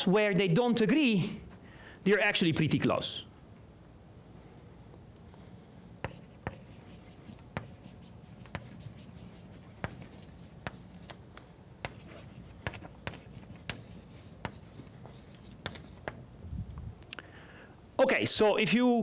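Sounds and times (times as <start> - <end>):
chalk tapping and scratching: 5.4 - 16.3.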